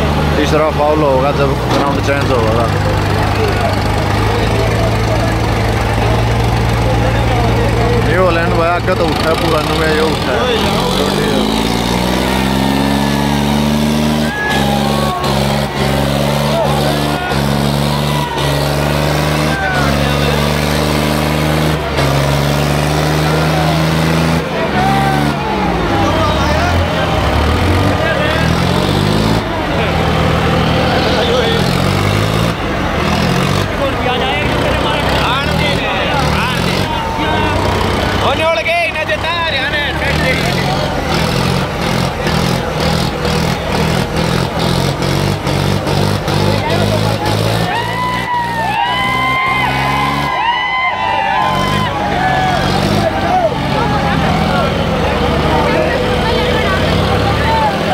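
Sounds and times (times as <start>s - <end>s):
crowd shouting: 0.0s - 57.9s
tractor diesel engine revving: 0.0s - 57.9s.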